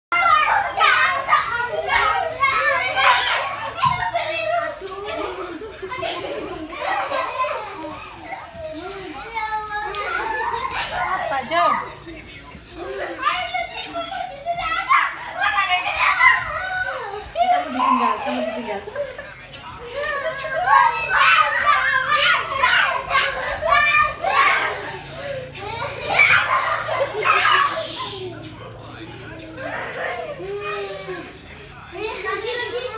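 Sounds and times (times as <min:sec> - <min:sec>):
children shouting: 0:00.1 - 0:32.9.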